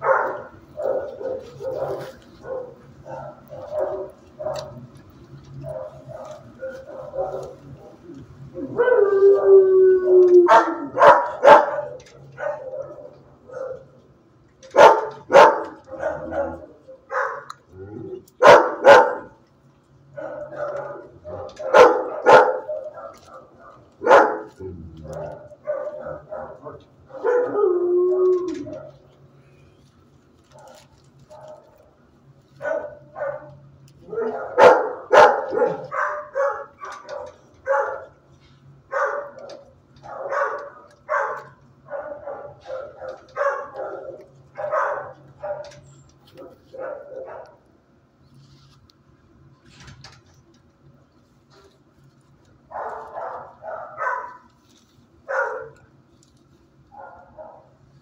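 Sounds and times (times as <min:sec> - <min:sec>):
dogs barking: 0:00.0 - 0:29.3, 0:30.4 - 0:47.8, 0:52.6 - 0:56.0, 0:56.8 - 0:57.9
dogs yapping: 0:00.0 - 0:29.3, 0:30.2 - 0:47.6, 0:52.6 - 0:56.0, 0:56.9 - 0:57.8
dog howling: 0:05.6 - 0:13.8, 0:14.8 - 0:19.4, 0:20.2 - 0:29.0.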